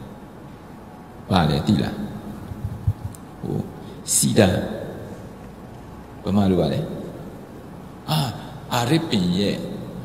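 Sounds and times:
low thumps on microphone: 2.5s - 3.2s.

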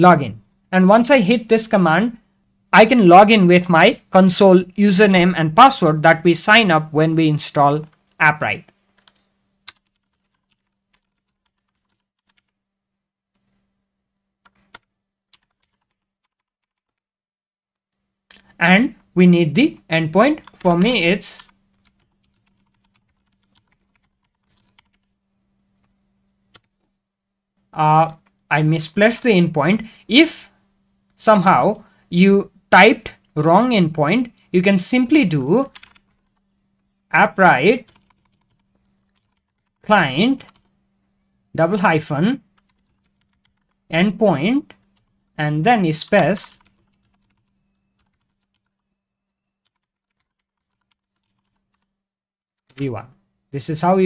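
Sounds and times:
faint keyboard typing: 7.8s - 12.6s, 14.4s - 17.0s, 17.8s - 25.2s, 25.8s - 27.0s, 28.1s - 28.5s, 35.2s - 37.1s, 37.7s - 40.8s, 42.4s - 45.4s, 46.0s - 52.0s, 52.6s - 53.1s.

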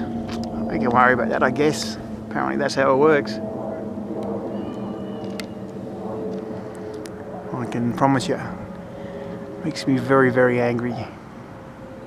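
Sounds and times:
low motor hum: 0.0s - 12.0s
thin high tone: 2.0s - 6.3s.

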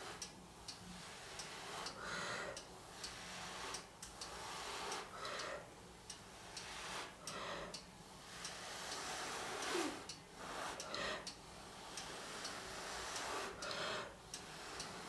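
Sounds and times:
faint clicks: 1.4s - 15.0s
breath blown in puffs: 8.6s - 11.2s.

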